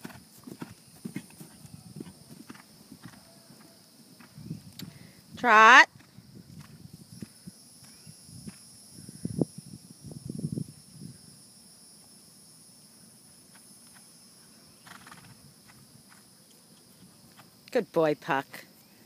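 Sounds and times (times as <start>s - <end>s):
horse hoofbeats on grass: 0.0s - 4.4s.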